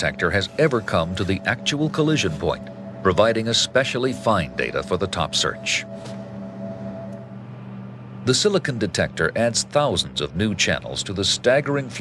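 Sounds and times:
higher held tone: 0.0 - 10.3
low drone of held tones: 0.0 - 12.0.

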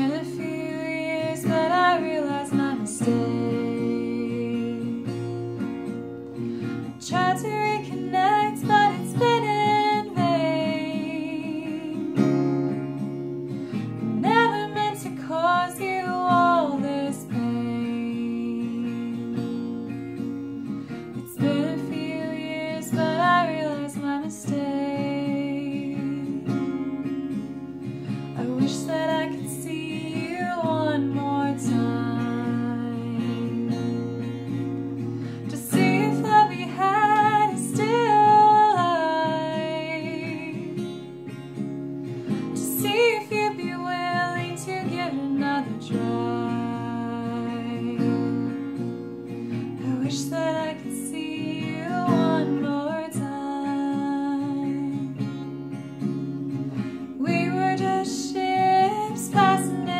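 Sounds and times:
woman singing: 0.0 - 27.5, 28.1 - 41.6, 42.3 - 59.9
picked acoustic guitar: 0.0 - 59.9.

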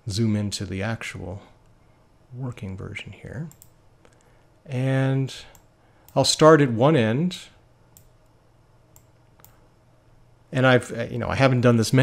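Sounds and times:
faint low hum: 0.0 - 12.0
computer mouse clicks: 3.5 - 4.3, 8.9 - 9.6.

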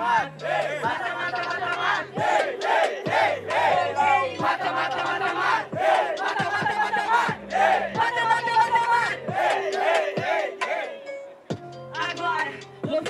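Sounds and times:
crowd chanting and shouting: 0.0 - 13.0.

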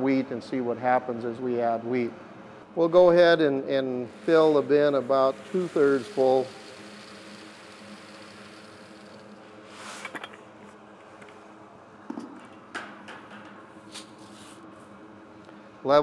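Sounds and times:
blower humming: 3.9 - 10.4
grain pouring with soft hiss: 4.0 - 10.0.

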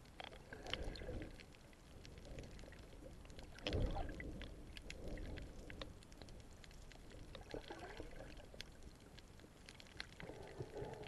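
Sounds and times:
faint underwater clicks and crackles: 0.0 - 11.0
underwater gurgling swishes: 0.0 - 11.0.

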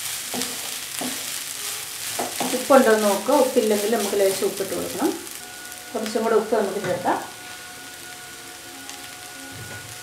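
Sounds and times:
food sizzling in a wok: 0.0 - 10.0.

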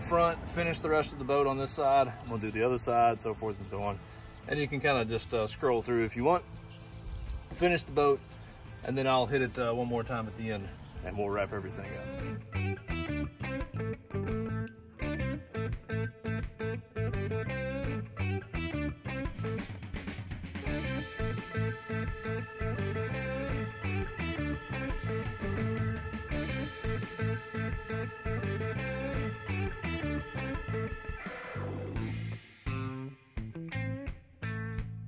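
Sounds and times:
rock music with guitar and beat: 12.1 - 35.0.

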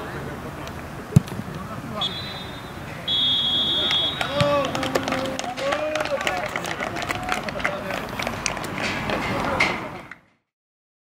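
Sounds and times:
footballers shouting: 1.9 - 8.0.

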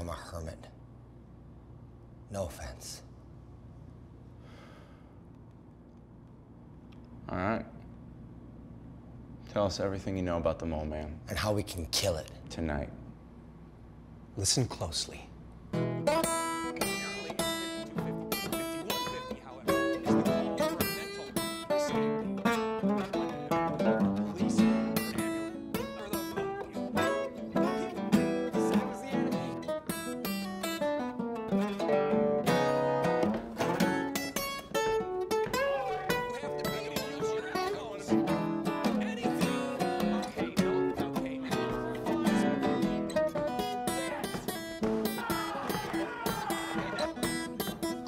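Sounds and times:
acoustic guitar music: 15.7 - 48.0.

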